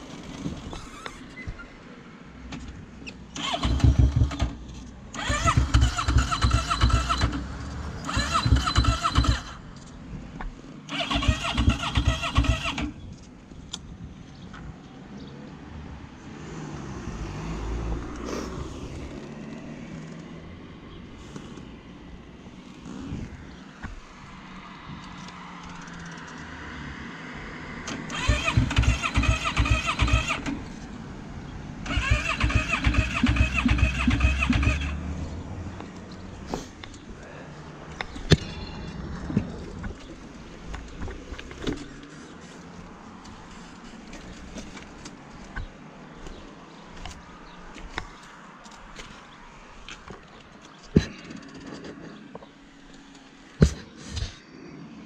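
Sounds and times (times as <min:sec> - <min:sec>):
electric starter cranking engine: 0:03.4 - 0:09.6, 0:10.9 - 0:12.9, 0:27.9 - 0:30.6, 0:31.8 - 0:35.0.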